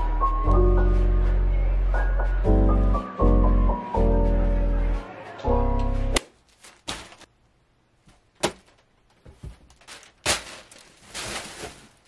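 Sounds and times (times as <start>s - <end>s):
plastic bag rustling: 6.4s - 7.3s, 8.5s - 12.0s.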